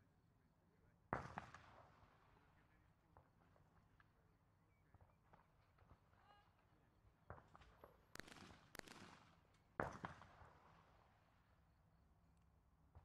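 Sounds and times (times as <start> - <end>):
shotgun shots with echo: 8.2 - 9.2.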